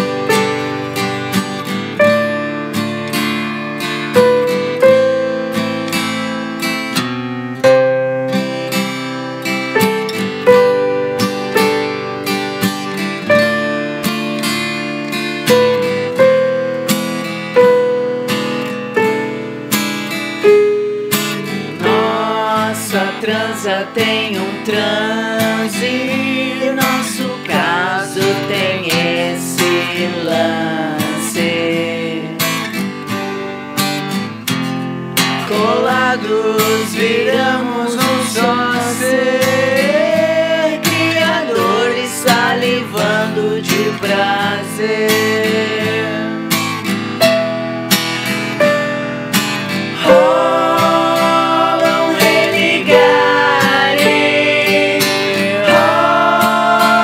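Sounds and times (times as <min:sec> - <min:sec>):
acoustic guitar picking and strumming: 0:00.0 - 0:57.0
person singing: 0:21.6 - 0:32.6, 0:35.4 - 0:46.5, 0:49.9 - 0:57.0.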